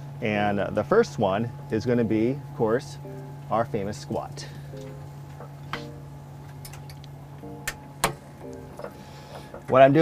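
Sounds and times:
steady low hum: 0:00.0 - 0:10.0
faint music with plucked notes: 0:01.4 - 0:10.0.

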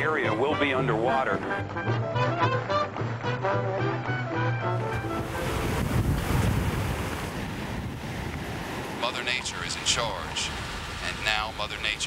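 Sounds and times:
hurricane wind rushing: 0:04.9 - 0:12.0.

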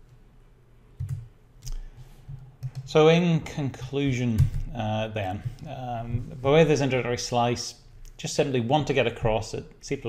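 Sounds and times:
man speaking: 0:02.9 - 0:10.0.

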